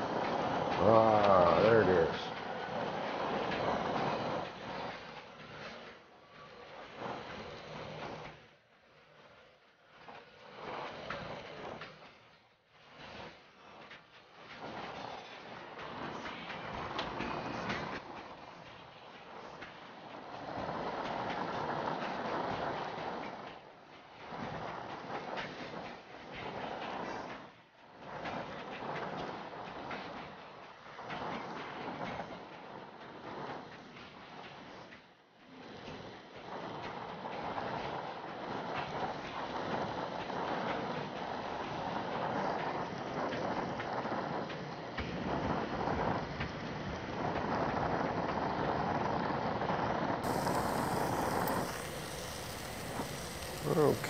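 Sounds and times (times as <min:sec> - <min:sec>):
torch flame hissing: 0:50.2 - 0:54.0.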